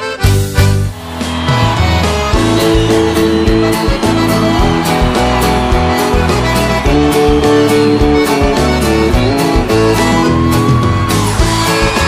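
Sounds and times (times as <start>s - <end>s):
accordion chords: 0.0s - 12.0s
guitar: 0.0s - 12.0s
steady drum beat: 0.3s - 12.0s.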